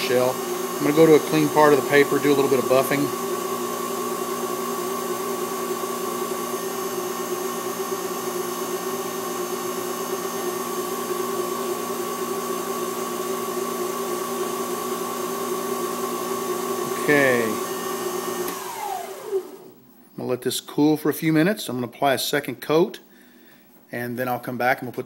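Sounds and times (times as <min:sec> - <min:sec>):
paper towel buffing spinning wood: 0:00.0 - 0:19.4
lathe motor whine and hum: 0:00.0 - 0:19.8.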